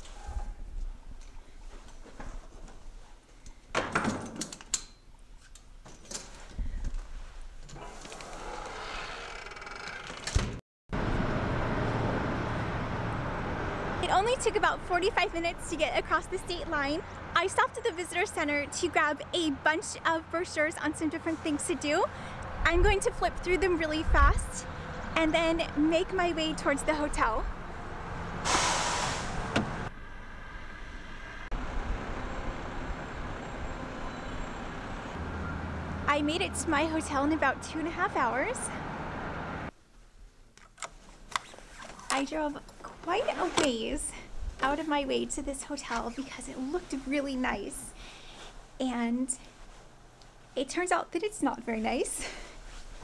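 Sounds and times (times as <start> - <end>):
traffic rumble: 10.9 - 53.0
car road noise: 11.0 - 14.8, 27.4 - 39.7
loud rushing hiss: 28.4 - 29.6.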